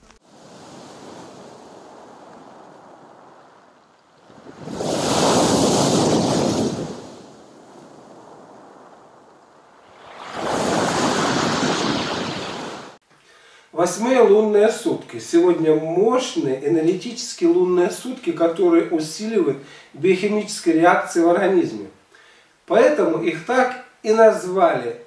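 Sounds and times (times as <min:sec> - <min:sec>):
surf washing on pebbles: 0:00.0 - 0:13.0
waves crashing: 0:00.0 - 0:13.0.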